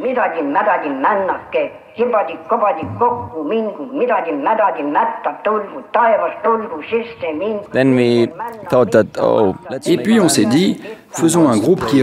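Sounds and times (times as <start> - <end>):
person talking: 2.3 - 3.6, 7.0 - 11.0.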